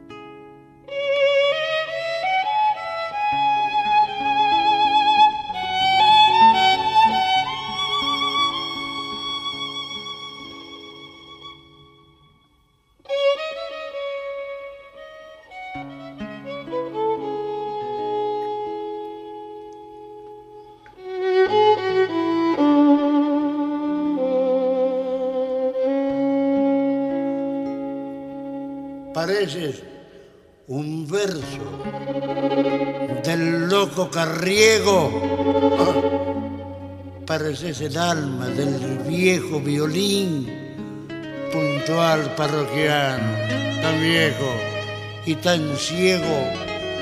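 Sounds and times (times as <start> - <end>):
violin melody with vibrato: 0.8 - 30.2, 31.1 - 47.0.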